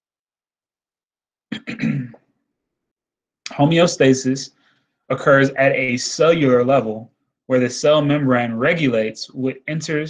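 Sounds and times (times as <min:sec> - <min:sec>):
man clearing his throat: 0:01.5 - 0:02.3.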